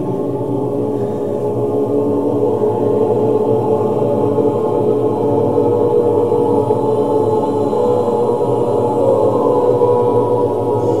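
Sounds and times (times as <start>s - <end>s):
choir chanting drone: 0.0s - 11.0s.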